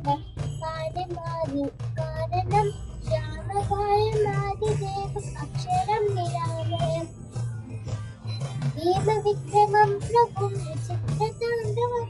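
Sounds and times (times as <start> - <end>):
girl singing a hymn: 0.0 - 7.1, 8.8 - 12.0
low musical accompaniment: 0.0 - 12.0.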